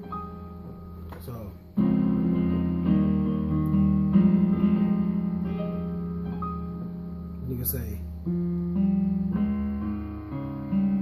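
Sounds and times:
sustained keyboard chords: 0.0s - 11.0s.

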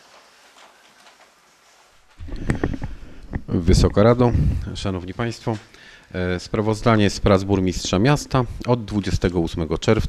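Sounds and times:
microphone handling knocks and clicks: 2.2s - 4.7s
microphone low rumble: 2.2s - 5.0s.

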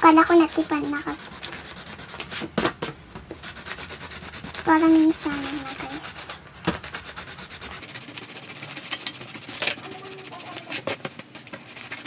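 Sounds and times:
crayon scratching on paper: 0.0s - 2.6s, 3.4s - 12.0s.

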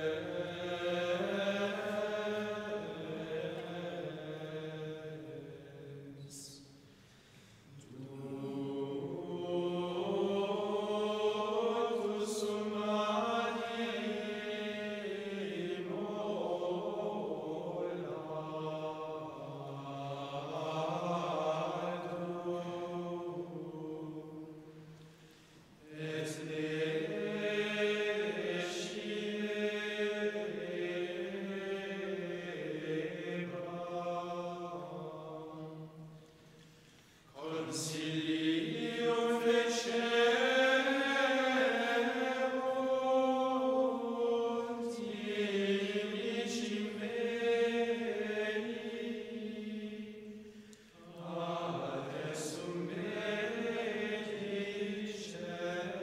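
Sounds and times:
men's choir chanting in unison: 0.0s - 6.2s, 7.8s - 24.9s, 25.8s - 36.2s, 37.3s - 56.0s.

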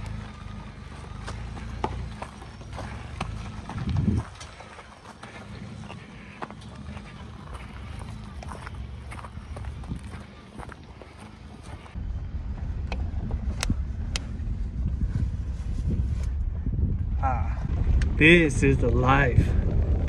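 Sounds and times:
stones crunching under tyres: 0.0s - 12.0s
truck engine running low: 0.0s - 20.0s.

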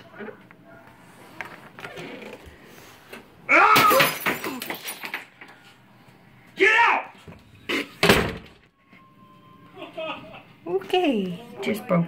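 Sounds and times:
glass shattering against wall: 3.7s - 5.3s.

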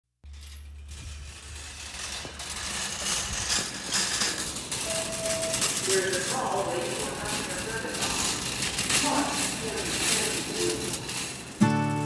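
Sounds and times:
clicking rattling noise: 0.6s - 11.6s
held tone: 4.8s - 5.6s.

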